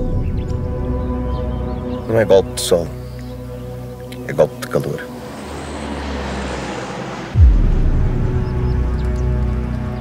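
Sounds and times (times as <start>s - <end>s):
low ominous drone: 2.9s - 10.0s
deep bass boom: 7.4s - 9.0s.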